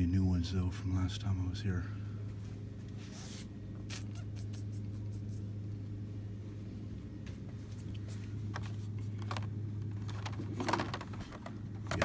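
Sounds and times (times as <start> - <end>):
low hum of shop background: 0.0 - 12.0.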